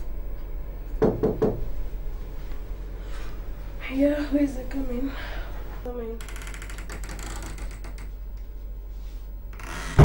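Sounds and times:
knocks on a door: 1.0s - 1.6s.

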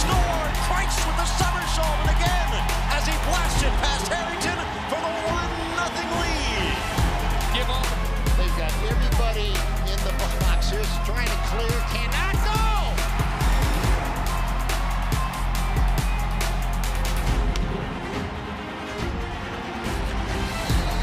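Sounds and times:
music with steady beat and bass: 0.0s - 18.4s, 19.0s - 21.0s.

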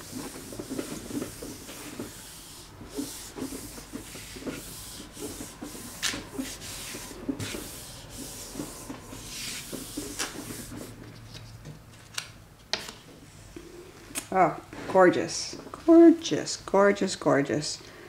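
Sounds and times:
palms rubbing paper: 0.0s - 11.2s.

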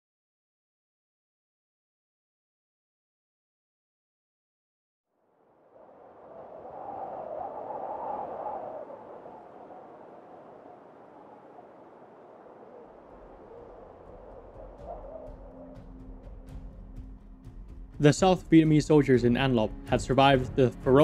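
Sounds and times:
low hum: 5.6s - 17.9s
hazy synth pad: 8.4s - 17.2s.

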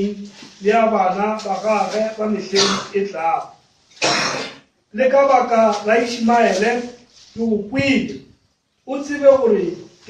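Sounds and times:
man preaching over microphone: 0.0s - 3.5s, 4.9s - 10.0s
harsh throat noise: 2.5s - 3.0s, 4.0s - 4.7s.

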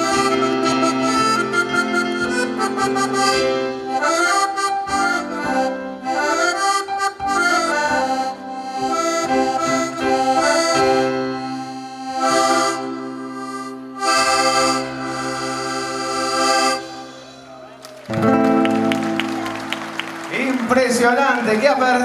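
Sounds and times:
accordion playing: 0.0s - 22.0s.

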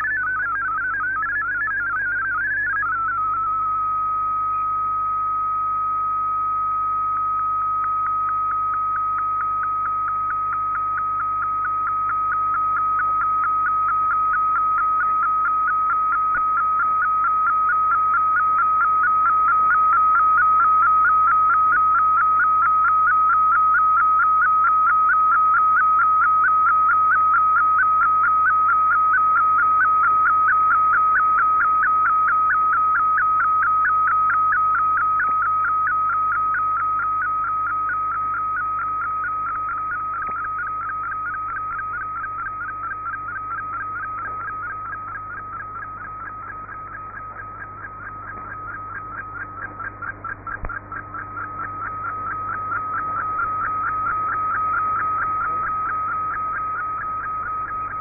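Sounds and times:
steady whistle-like tone: 0.0s - 58.0s.

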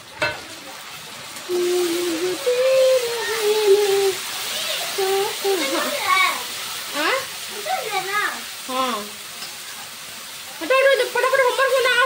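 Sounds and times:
onions sizzling in oil: 0.0s - 12.0s.

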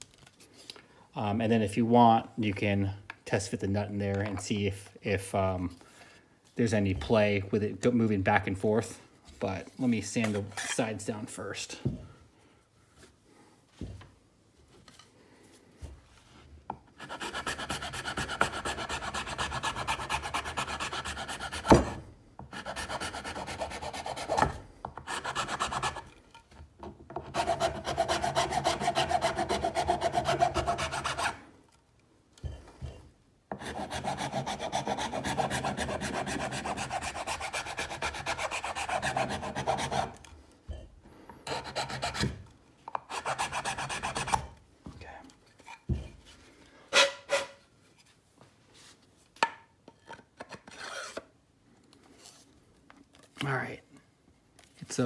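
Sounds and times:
sandpaper rubbing wood: 17.0s - 24.4s, 25.0s - 26.1s, 27.3s - 31.4s, 33.6s - 40.1s, 41.5s - 42.2s, 43.1s - 44.4s.

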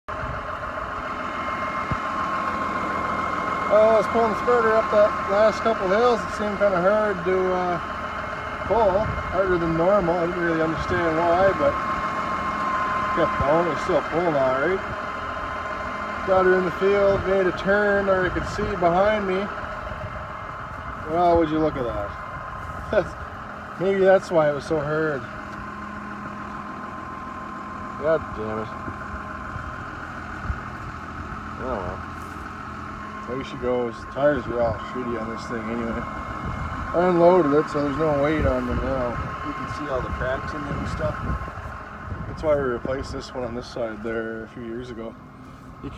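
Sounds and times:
tractor engine idling: 0.0s - 45.9s.

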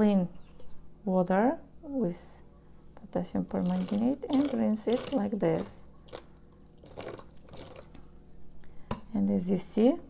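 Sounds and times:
water trickling into basin: 3.5s - 8.4s
water splashes and drips: 3.6s - 8.1s.

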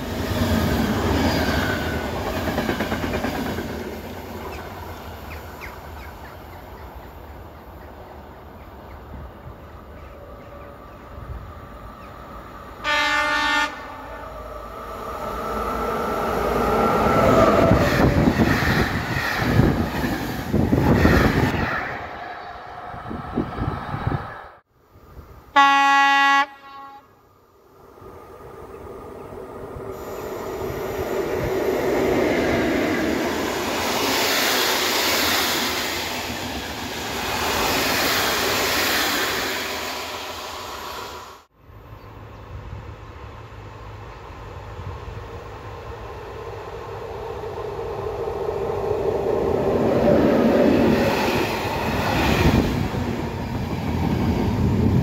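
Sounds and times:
train wheels rolling on rails: 0.0s - 12.8s, 14.3s - 24.3s, 28.0s - 41.5s, 42.5s - 55.0s
locomotive horn: 12.8s - 14.3s, 25.5s - 27.2s.

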